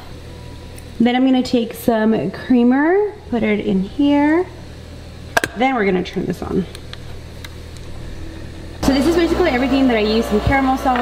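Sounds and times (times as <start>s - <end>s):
coffee machine whirring: 6.0s - 11.0s
milk frother humming: 7.8s - 11.0s.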